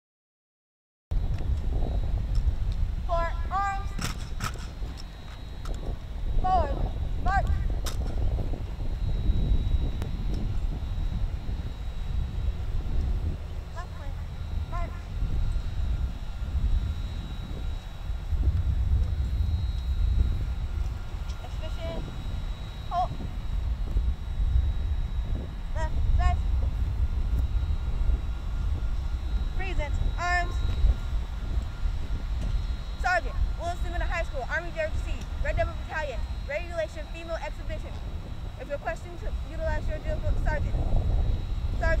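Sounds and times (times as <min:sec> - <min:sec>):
low rumble: 0:01.1 - 0:42.0
person shouting commands: 0:03.1 - 0:04.0, 0:06.4 - 0:07.7, 0:13.7 - 0:15.1, 0:21.4 - 0:22.0, 0:22.9 - 0:23.2, 0:25.8 - 0:26.4, 0:29.6 - 0:30.6, 0:33.0 - 0:37.9.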